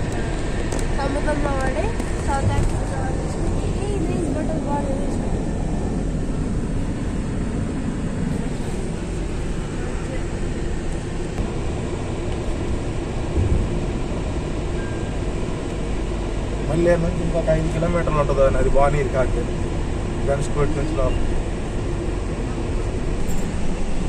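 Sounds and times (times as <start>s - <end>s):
car road and engine noise: 0.0s - 24.0s.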